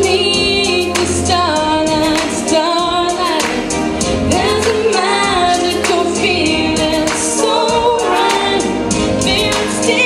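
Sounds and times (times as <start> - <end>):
backing music with steady beat: 0.0 - 10.0
girl singing pop song: 0.0 - 10.0.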